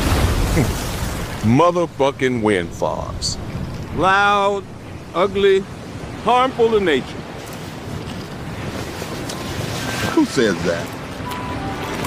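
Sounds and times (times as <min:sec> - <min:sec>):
outdoor wind rushing: 0:00.0 - 0:12.0
wind buffeting microphone: 0:00.0 - 0:12.0.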